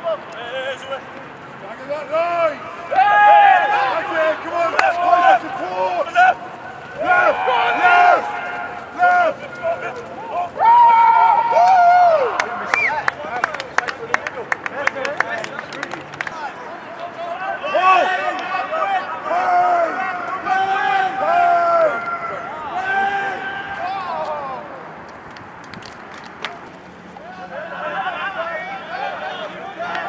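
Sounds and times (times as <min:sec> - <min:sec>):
people shouting and calling out: 0:00.0 - 0:14.1, 0:16.3 - 0:24.9, 0:27.2 - 0:30.0.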